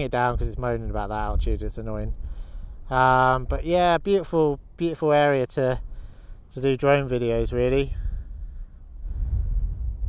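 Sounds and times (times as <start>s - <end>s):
wind buffeting microphone: 0.0s - 4.8s, 5.8s - 10.0s.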